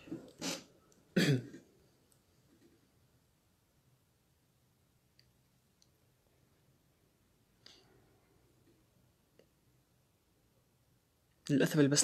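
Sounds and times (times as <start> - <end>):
man clearing throat: 1.2 - 1.6.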